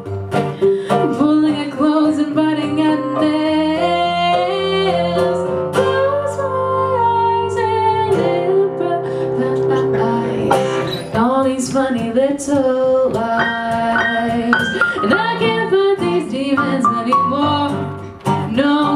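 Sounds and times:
strummed acoustic guitar: 0:00.0 - 0:03.2, 0:04.3 - 0:18.9.

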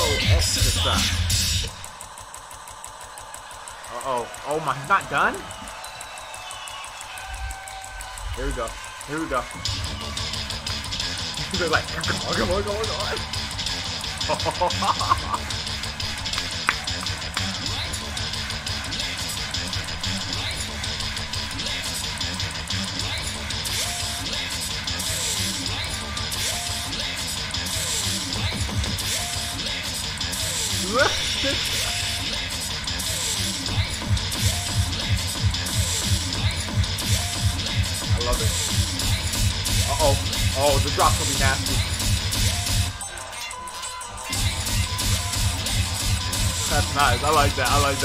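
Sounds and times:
beatbox loops: 0:00.0 - 0:04.0, 0:05.3 - 0:43.0, 0:43.6 - 0:48.0
crowd cheering: 0:00.0 - 0:48.0
steady bass line: 0:08.3 - 0:42.9, 0:44.3 - 0:48.0.

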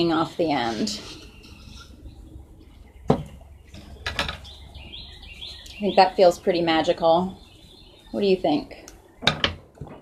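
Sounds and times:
faint birds chirping: 0:00.0 - 0:09.4.

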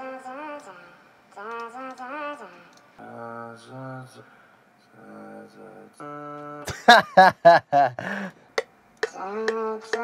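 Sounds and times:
auto-tuned singing voice: 0:00.0 - 0:06.8, 0:09.0 - 0:10.0.

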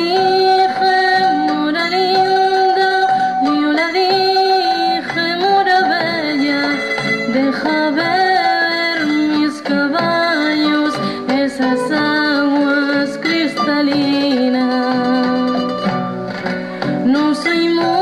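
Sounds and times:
woman singing: 0:00.0 - 0:15.9, 0:16.8 - 0:18.0
acoustic guitar: 0:00.0 - 0:18.0.

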